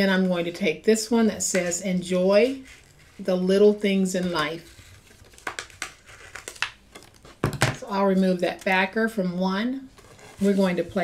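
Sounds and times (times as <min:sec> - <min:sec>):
plastic sheet crinkling: 0:04.4 - 0:07.4.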